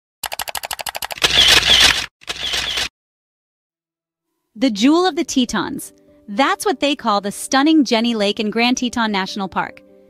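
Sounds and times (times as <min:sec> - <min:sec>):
camera shutter clicks: 0:00.6 - 0:02.9.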